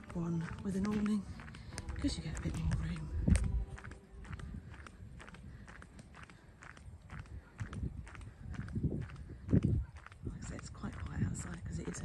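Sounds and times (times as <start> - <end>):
footsteps on tarmac: 0.0 - 12.0.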